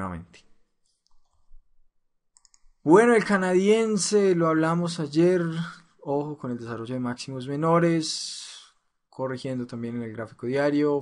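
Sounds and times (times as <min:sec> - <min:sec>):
man talking: 0:00.0 - 0:00.5, 0:02.8 - 0:11.0
computer mouse clicks: 0:00.8 - 0:01.6, 0:02.3 - 0:02.8.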